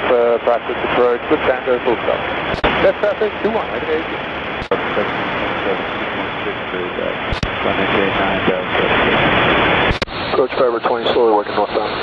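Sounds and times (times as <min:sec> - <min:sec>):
faint radio voice: 0:00.0 - 0:09.2, 0:09.9 - 0:12.0
radio static hiss: 0:00.0 - 0:12.0
sharp radio clicks: 0:07.3 - 0:07.5, 0:09.9 - 0:10.1.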